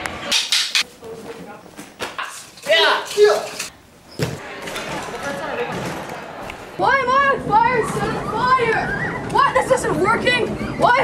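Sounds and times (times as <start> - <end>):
high-pitched voices calling out: 6.8 - 11.0.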